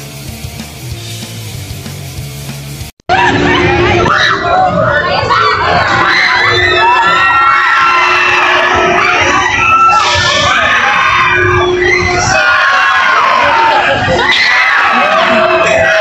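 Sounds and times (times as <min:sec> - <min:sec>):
riders screaming and shouting: 0:03.1 - 0:16.0.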